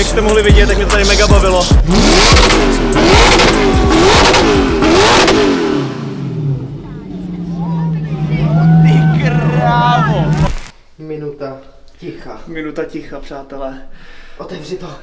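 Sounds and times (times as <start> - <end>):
sports car engine revving: 0.8 - 10.7
crowd voices and shouts: 3.4 - 5.2, 6.9 - 10.7.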